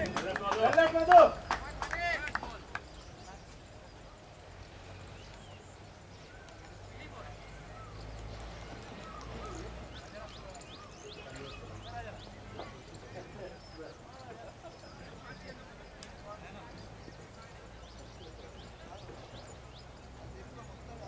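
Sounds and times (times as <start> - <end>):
distant voices calling: 0.0 - 21.0
wind: 0.0 - 21.0.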